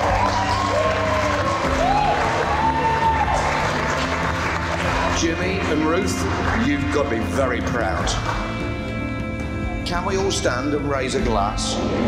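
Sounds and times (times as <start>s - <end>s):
audience applauding: 0.0s - 8.7s
background music with long notes: 0.0s - 12.0s.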